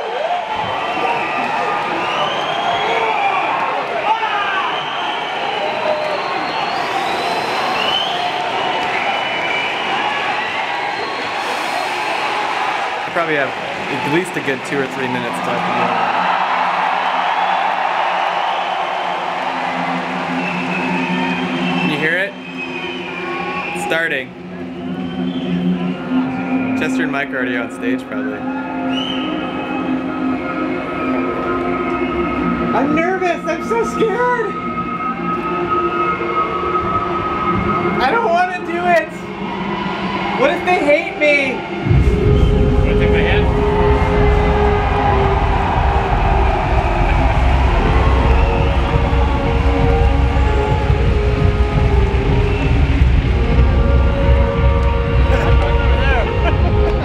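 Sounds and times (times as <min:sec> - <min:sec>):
crowd noise: 0:00.0 - 0:57.0
heavy steady bass: 0:41.8 - 0:57.0.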